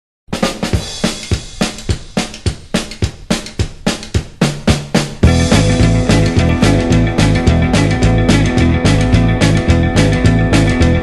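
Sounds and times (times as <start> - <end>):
rockabilly drum beat: 0.3 - 11.0.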